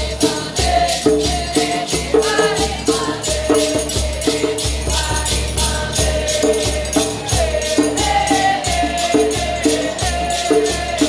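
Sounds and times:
hand drum beating: 0.0 - 11.0
shaken rattle: 0.0 - 11.0
group of voices chanting: 5.6 - 11.0.

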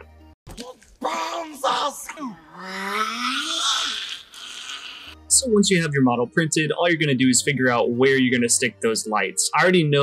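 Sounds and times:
creature's raspy scream: 1.0 - 5.2.

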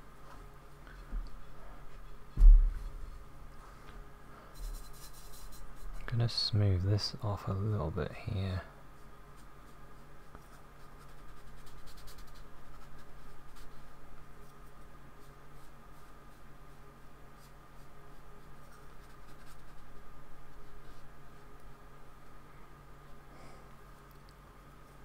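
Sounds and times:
paintbrush brushing paint: 4.5 - 6.3, 9.0 - 21.8.

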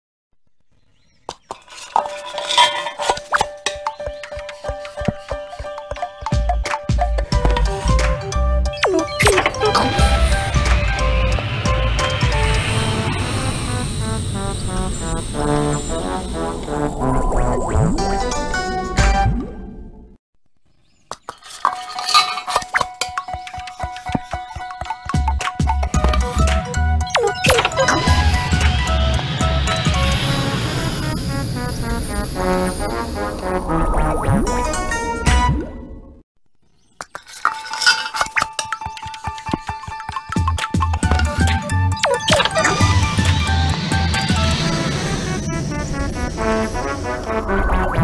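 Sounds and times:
rapid metallic clinks: 21.2 - 26.0, 37.0 - 41.4.

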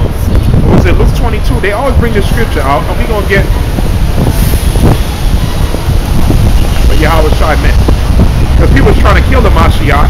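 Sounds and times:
street traffic passing: 0.0 - 10.0
wind buffeting microphone: 0.0 - 10.0.

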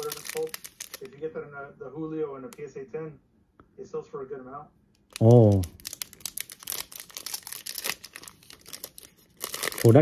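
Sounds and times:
foil wrapper tearing and crinkling: 0.0 - 1.1, 5.1 - 10.0.

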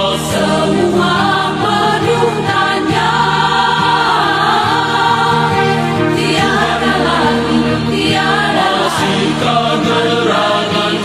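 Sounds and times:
choir singing praise song: 0.0 - 11.0.

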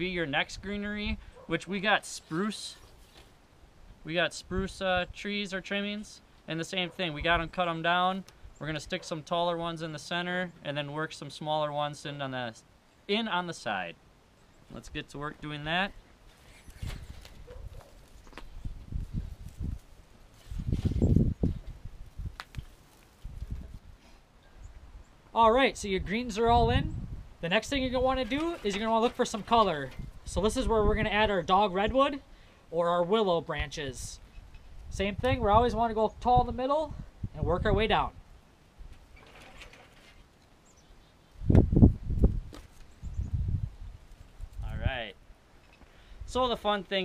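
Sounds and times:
branches rustling and thumping: 2.8 - 3.4, 16.1 - 23.9, 28.1 - 30.3, 41.5 - 43.0
light snaps of branches: 22.3 - 23.5.

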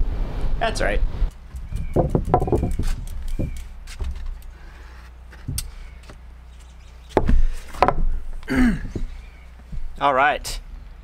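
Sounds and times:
knocks: 1.8 - 4.2, 7.1 - 8.2.

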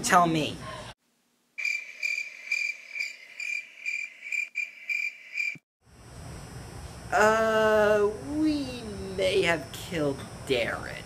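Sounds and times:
crickets chirping: 1.6 - 11.0.

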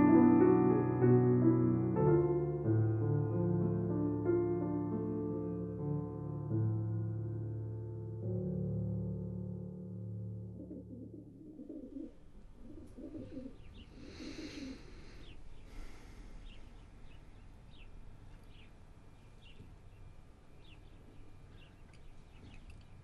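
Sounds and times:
low cooing bird calls: 10.6 - 15.7.

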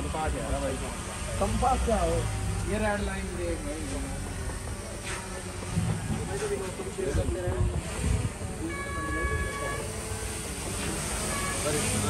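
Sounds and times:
wind buffeting microphone: 6.9 - 8.6
high horn-like tone: 8.6 - 12.0.

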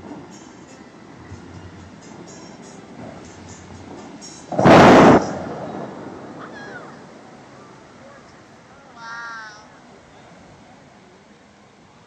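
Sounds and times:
water shooter blast: 4.5 - 6.8.

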